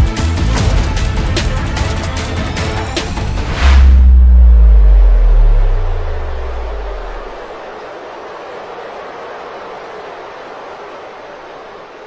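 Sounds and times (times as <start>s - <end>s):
deep sub-bass drop: 3.0s - 7.6s.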